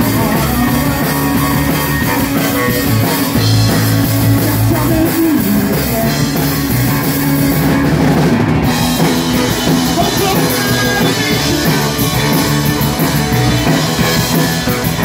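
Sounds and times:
drum kit with cymbals: 0.0 - 15.0
electric bass: 0.0 - 15.0
electric guitar: 0.0 - 15.0.

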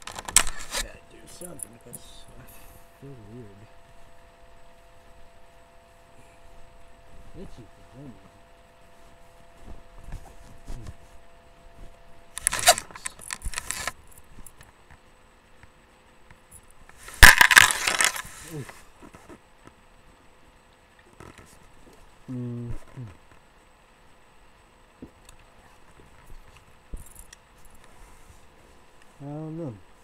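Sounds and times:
jingly clicks and rustles: 12.4 - 14.7, 16.5 - 18.8.

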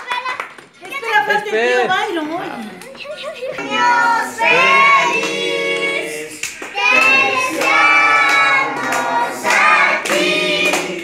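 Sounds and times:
group singing together: 3.6 - 11.0
hands clapping in time: 5.2 - 11.0.

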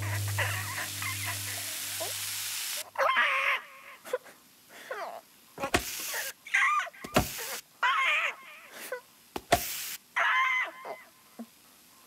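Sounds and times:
low hum: 0.0 - 2.8.

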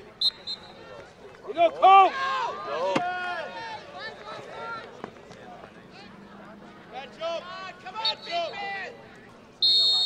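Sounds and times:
people shouting and calling out: 0.8 - 5.0, 5.9 - 9.1.

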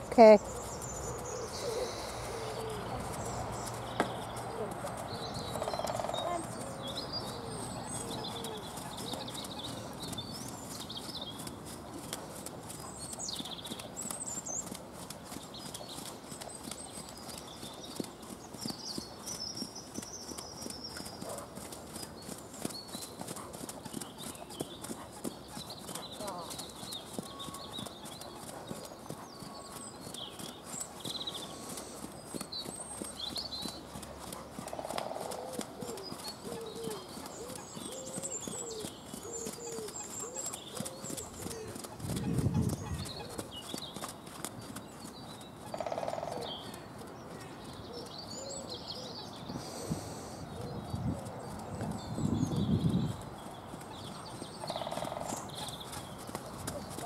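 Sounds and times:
pony hoofbeats on dirt: 0.0 - 49.1, 51.0 - 57.0
birds singing: 0.0 - 57.0.

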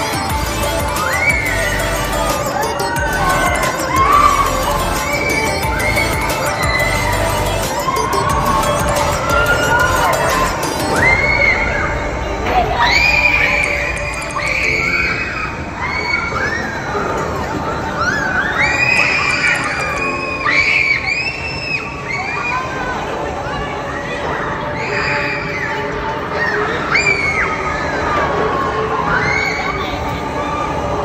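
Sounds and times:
background music: 0.0 - 21.6
riders screaming: 0.0 - 22.8
crowd noise: 0.0 - 31.0
high drawn-out shriek: 0.9 - 17.2.

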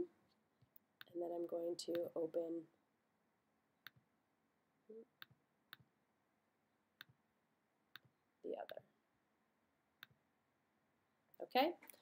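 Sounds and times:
computer mouse clicks: 1.8 - 2.2, 7.9 - 8.8.

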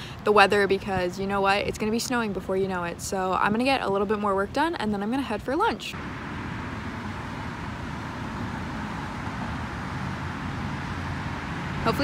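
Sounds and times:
rush of passing cars: 5.8 - 12.0.

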